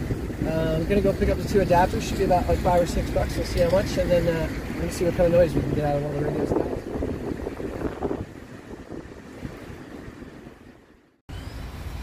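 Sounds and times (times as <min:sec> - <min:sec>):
heavy surf rumbling: 0:00.0 - 0:11.0
wind on microphone: 0:00.0 - 0:11.1.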